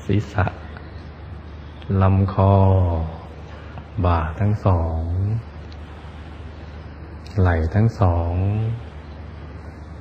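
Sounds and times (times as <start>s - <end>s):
man speaking calmly: 0.0s - 0.9s, 1.8s - 5.6s, 7.2s - 9.0s.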